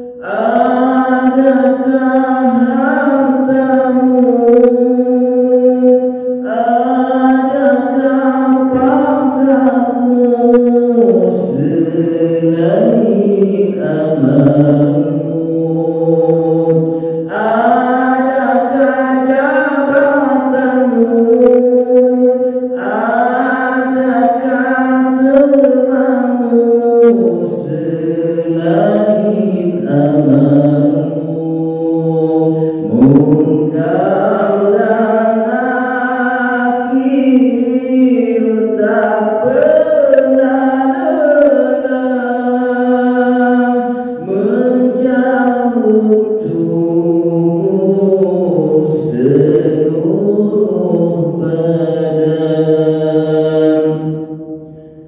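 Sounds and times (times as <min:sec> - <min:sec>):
man singing religious chant: 0:00.0 - 0:55.0.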